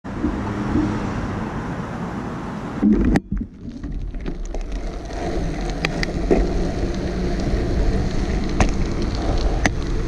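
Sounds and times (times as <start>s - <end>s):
low hum: 0.0s - 1.9s
road traffic rushing by: 0.0s - 3.8s.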